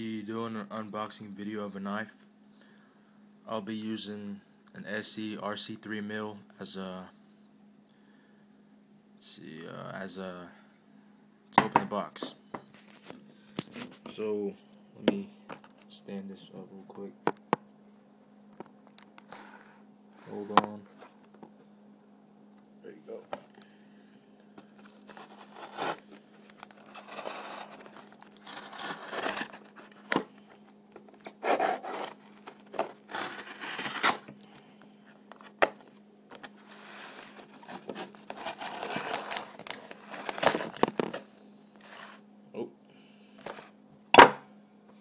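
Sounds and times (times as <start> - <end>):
steady low hum: 0.0 - 45.0
cardboard scraping and tearing: 24.8 - 30.2, 31.2 - 34.3, 36.4 - 41.2.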